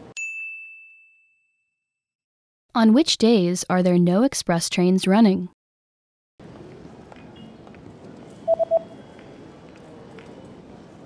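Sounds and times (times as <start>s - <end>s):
train station ambience: 6.4s - 11.0s
short electronic beeps: 8.5s - 8.9s.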